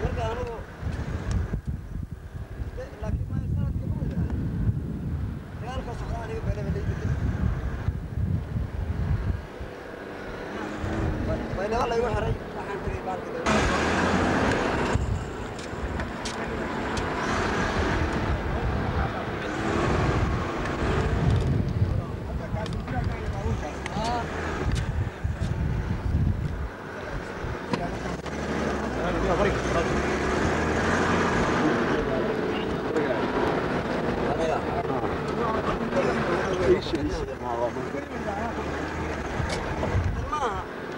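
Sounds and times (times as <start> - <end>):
wind buffeting microphone: 0.0 - 40.8
vehicle driving on dirt track: 13.4 - 40.9.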